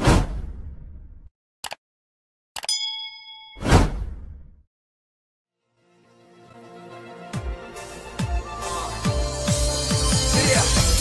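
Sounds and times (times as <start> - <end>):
notification bell ding: 2.6 - 3.6.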